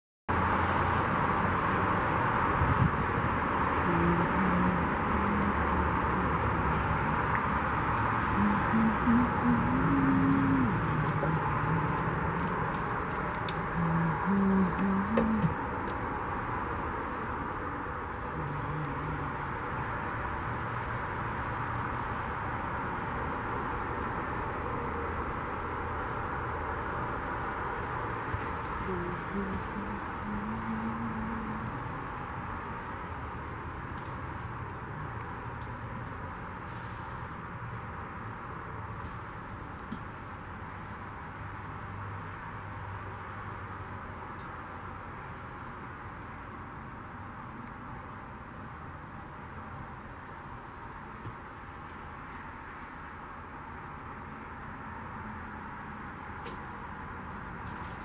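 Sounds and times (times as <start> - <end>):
steady background noise: 0.3 - 58.0
faint low hums: 2.6 - 21.8, 23.7 - 58.0.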